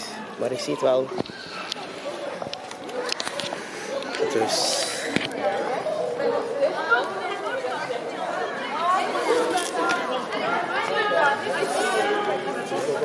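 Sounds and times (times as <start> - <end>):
indistinct chatter: 0.0 - 13.0.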